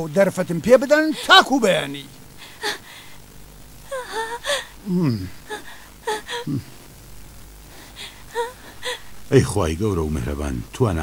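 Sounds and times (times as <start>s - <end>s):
person crying out: 3.8s - 6.8s, 8.0s - 9.1s.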